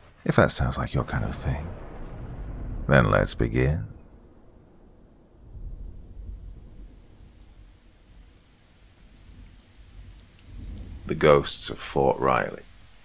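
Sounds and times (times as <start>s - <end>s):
faint steady hiss: 0.0s - 13.0s
low rumbling ambience: 0.0s - 13.0s.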